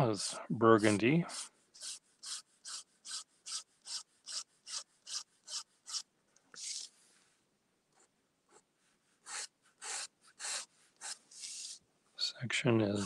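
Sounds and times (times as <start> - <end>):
pen scratching on paper: 0.0 - 6.0, 8.0 - 11.8.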